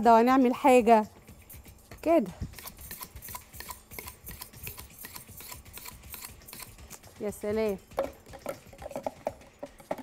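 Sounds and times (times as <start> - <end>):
knife scraping on mug rim: 2.5 - 7.1.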